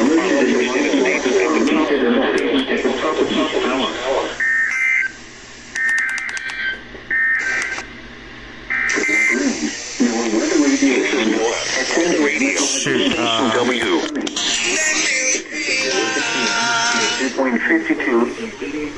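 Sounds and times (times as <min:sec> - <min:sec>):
radio broadcast voice through speaker: 0:00.0 - 0:04.8, 0:08.9 - 0:18.9.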